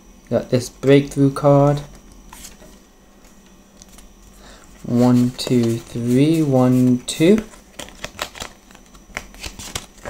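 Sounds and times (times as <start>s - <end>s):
low steady hum: 0.0s - 10.0s
cards sliding and rustling: 2.3s - 10.0s.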